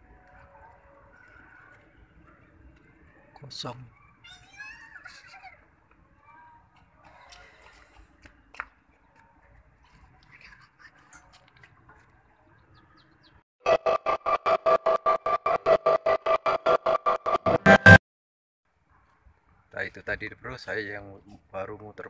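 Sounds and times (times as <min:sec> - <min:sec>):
loud pulsing tone: 0:13.6 - 0:18.0.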